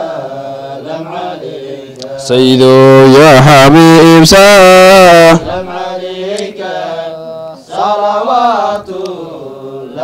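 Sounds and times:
men chanting devotional song: 0.0s - 10.0s.

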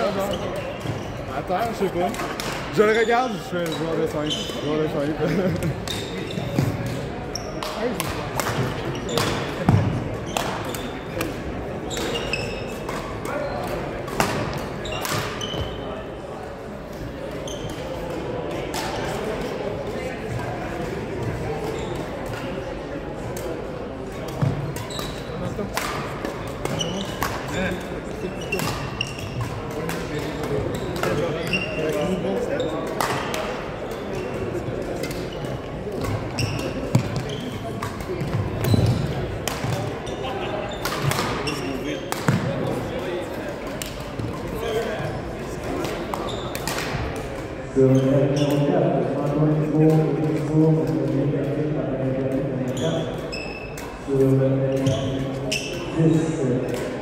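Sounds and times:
court shoes squeaking: 0.0s - 57.0s
murmur of voices: 0.0s - 57.0s.

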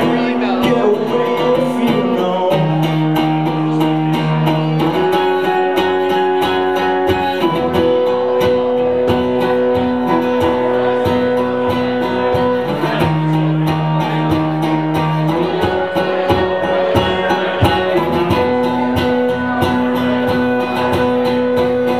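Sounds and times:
acoustic guitar strumming: 0.0s - 21.9s.

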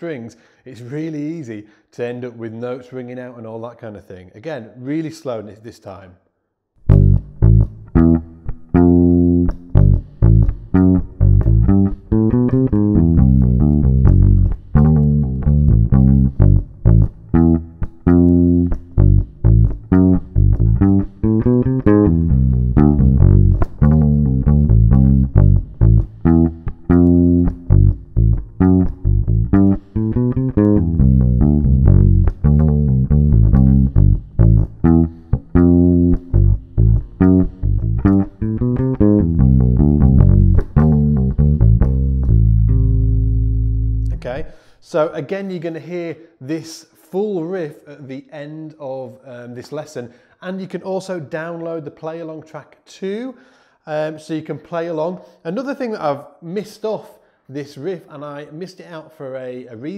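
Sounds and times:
electric bass guitar riff: 6.8s - 44.7s.

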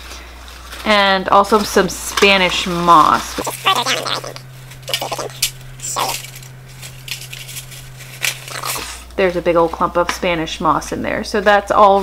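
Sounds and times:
paper packet crinkling: 2.6s - 9.1s.

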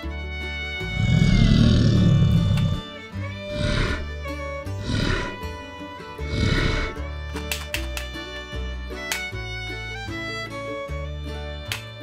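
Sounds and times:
background music: 0.0s - 12.0s
dinosaur roar: 0.8s - 5.6s, 6.2s - 7.0s.

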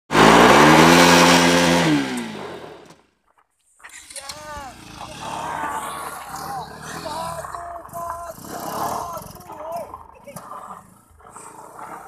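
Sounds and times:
motorcycle engine revving: 0.1s - 3.0s, 4.4s - 12.0s
rear wheel spinning in dirt: 0.1s - 12.0s.

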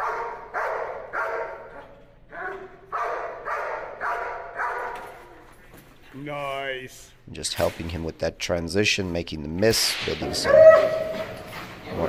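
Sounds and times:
dog barking: 0.0s - 1.7s, 2.4s - 5.2s.

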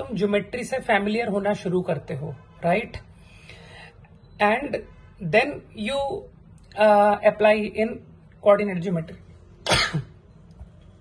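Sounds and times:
man coughing: 9.6s - 10.2s.

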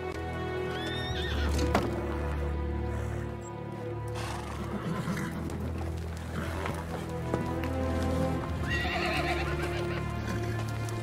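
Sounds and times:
film score music: 0.0s - 11.0s
hoofbeats: 0.0s - 11.0s
horses neighing: 0.7s - 1.8s, 4.1s - 11.0s.

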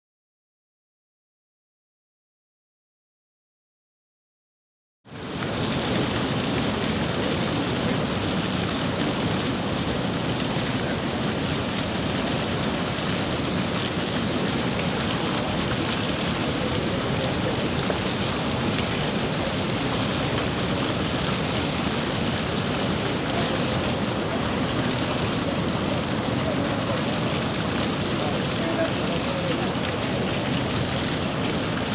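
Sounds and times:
flaming fountain rushing: 5.1s - 31.9s.

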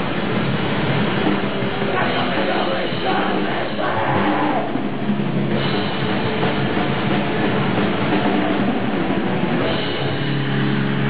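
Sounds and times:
live hardcore band playing: 0.0s - 11.0s.

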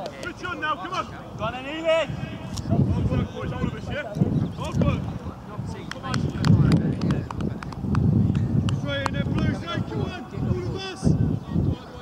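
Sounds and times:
calls and talk of players: 0.0s - 12.0s
wind buffeting microphone: 0.0s - 12.0s.

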